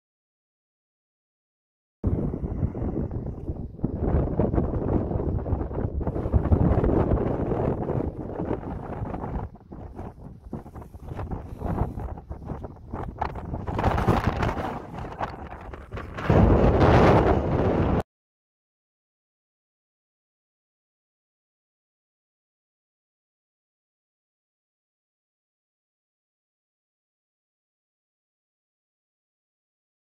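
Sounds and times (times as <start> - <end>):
wind buffeting microphone: 2.0 - 18.0.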